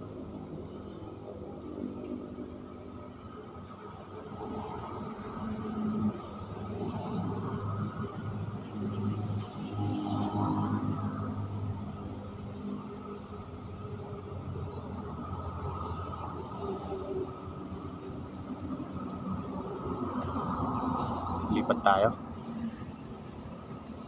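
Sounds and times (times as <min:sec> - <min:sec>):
engine hum: 0:00.0 - 0:24.0.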